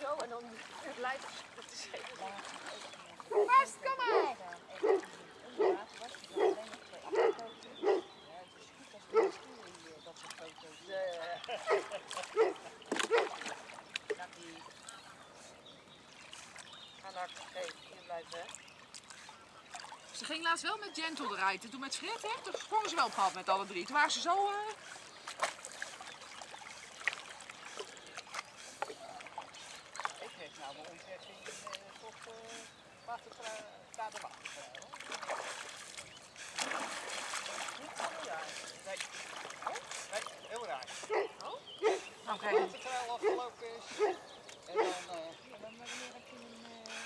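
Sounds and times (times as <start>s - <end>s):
lake water lapping: 0.0s - 47.0s
sharp water drips: 0.0s - 47.0s
dog barking: 3.3s - 5.8s, 6.4s - 8.1s, 9.1s - 9.4s, 11.6s - 13.3s, 41.1s - 44.2s, 44.8s - 45.0s.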